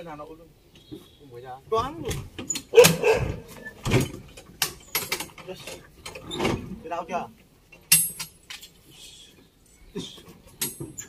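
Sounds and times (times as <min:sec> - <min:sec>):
metal truck door clanking open: 0:01.8 - 0:06.8.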